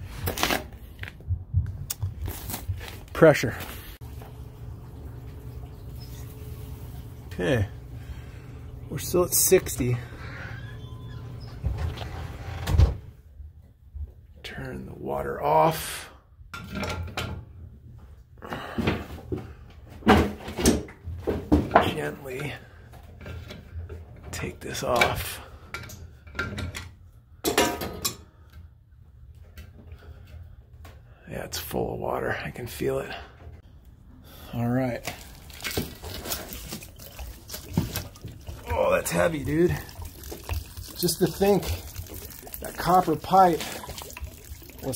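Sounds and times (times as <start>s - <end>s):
water sloshing in a tank: 2.2s - 12.6s, 29.4s - 44.9s.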